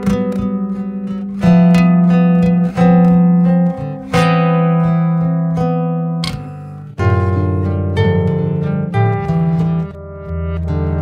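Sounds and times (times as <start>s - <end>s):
acoustic guitar chords: 0.0s - 11.0s.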